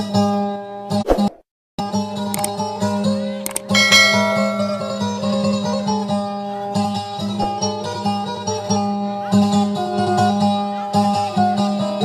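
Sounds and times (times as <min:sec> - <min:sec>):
boat lute drone: 0:03.8 - 0:05.8.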